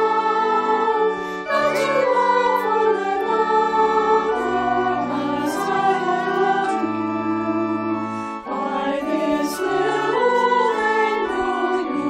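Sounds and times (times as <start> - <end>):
choir singing sustained chords: 0.0 - 12.0
organ bass line: 0.0 - 12.0.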